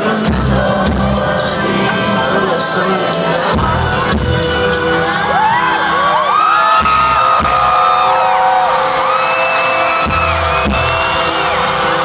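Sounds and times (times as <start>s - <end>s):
live rock band: 0.0s - 12.0s
audience whooping: 4.5s - 12.0s.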